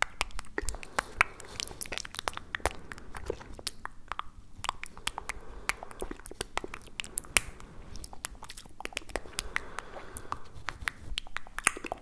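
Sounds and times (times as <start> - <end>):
mouth and tongue clicks: 0.0 - 12.0.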